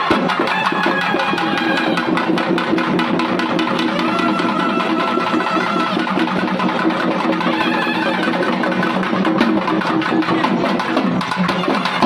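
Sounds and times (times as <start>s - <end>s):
wind instrument long notes: 0.0s - 2.2s, 3.8s - 6.4s, 7.4s - 8.7s
double-headed drum beating: 0.0s - 12.0s.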